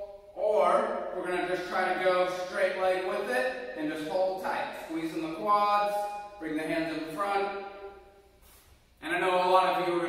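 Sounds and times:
man speaking: 0.4s - 7.6s, 9.0s - 10.0s.

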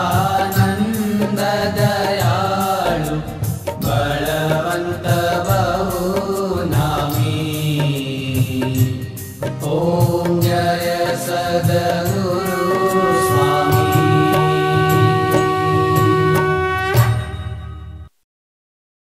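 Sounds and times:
person singing a hymn: 0.0s - 16.5s
repeated percussion strikes: 0.0s - 18.0s
held instrumental notes: 8.9s - 18.1s.

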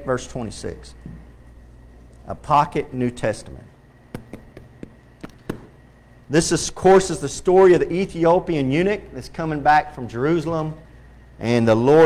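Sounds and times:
sharp clicks and taps: 4.1s - 5.7s.

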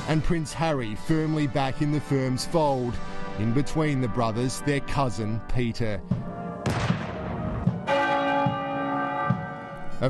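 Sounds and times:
field gun blast: 6.6s - 7.7s
large bell ringing: 7.8s - 10.0s.

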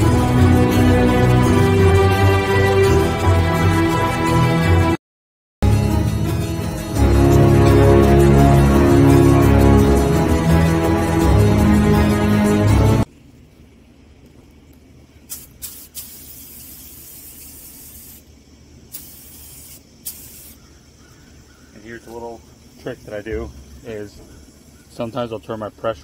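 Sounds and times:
paint spray gun hissing: 15.3s - 21.6s.

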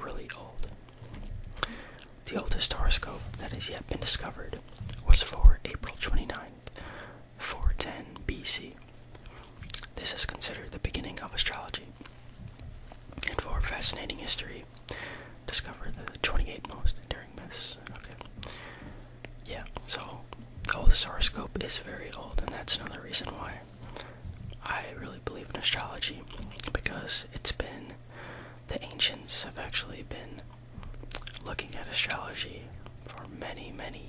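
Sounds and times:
man whispering: 0.0s - 0.8s, 1.6s - 6.8s, 7.4s - 8.8s, 9.6s - 12.1s, 13.2s - 14.7s, 15.4s - 18.6s, 19.4s - 28.0s, 28.7s - 30.5s, 31.2s - 34.0s.

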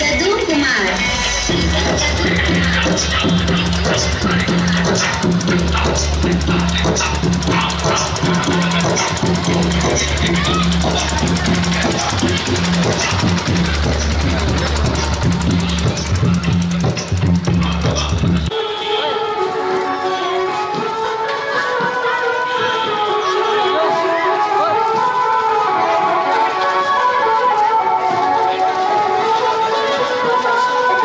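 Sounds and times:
heavy repeating bass line: 0.8s - 18.5s
person singing: 0.9s - 31.0s.

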